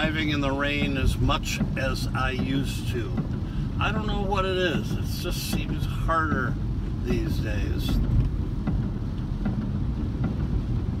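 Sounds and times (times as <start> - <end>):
car cabin rumble: 0.0 - 11.0
rain on wet road: 0.0 - 11.0.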